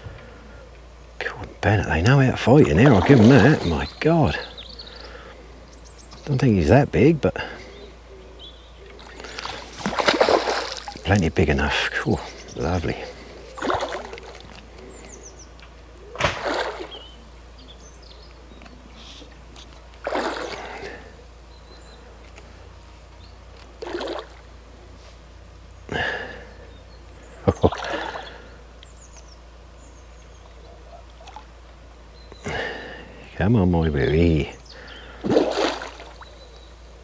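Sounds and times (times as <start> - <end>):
fish splashing at the surface: 2.8 - 3.8, 9.1 - 11.1, 13.6 - 14.6, 16.1 - 17.0, 20.0 - 21.0, 23.8 - 24.4, 27.6 - 28.3, 35.2 - 36.2.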